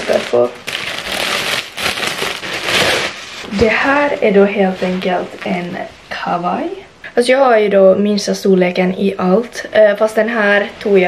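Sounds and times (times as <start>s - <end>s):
plastic bag crinkling: 0.0s - 4.0s.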